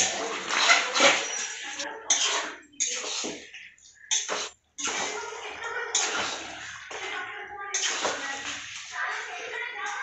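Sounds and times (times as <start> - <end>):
metal spatula scraping pan: 0.0 - 10.0.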